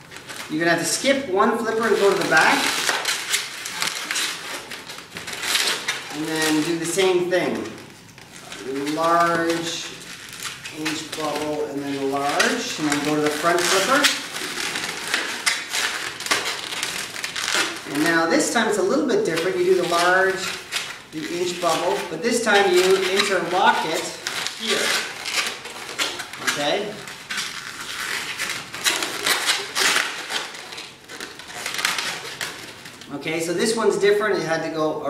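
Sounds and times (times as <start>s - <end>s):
balloons rubbing and creaking: 0.0s - 34.7s.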